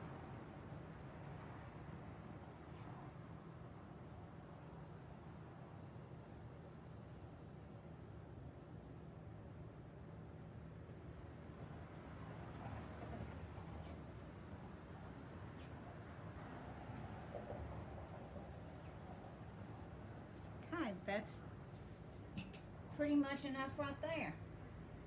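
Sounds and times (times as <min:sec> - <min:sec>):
low background hum: 0:00.0 - 0:25.0.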